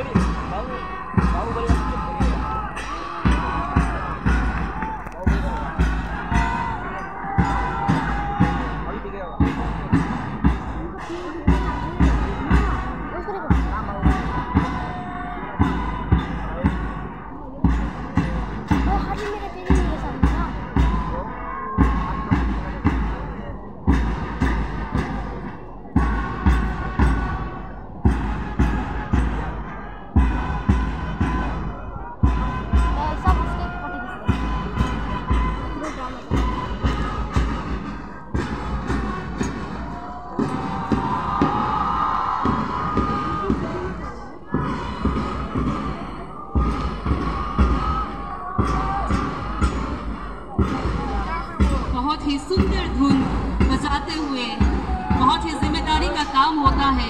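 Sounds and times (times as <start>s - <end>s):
marching band drums: 0.0s - 57.0s.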